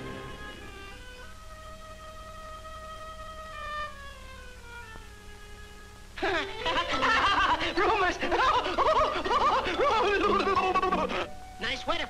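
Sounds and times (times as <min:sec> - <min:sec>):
cartoon voice laughing madly: 0:06.2 - 0:11.3.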